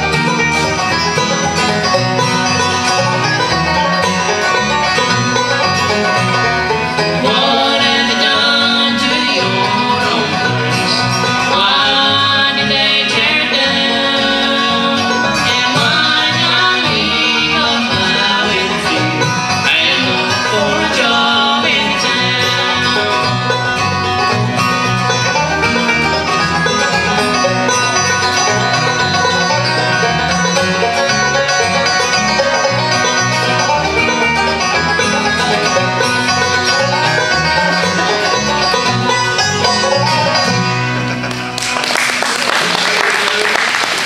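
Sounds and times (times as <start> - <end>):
fiddle: 0.0 - 43.7
acoustic guitars: 0.0 - 44.0
banjo: 0.0 - 44.0
audience applauding: 41.2 - 44.0.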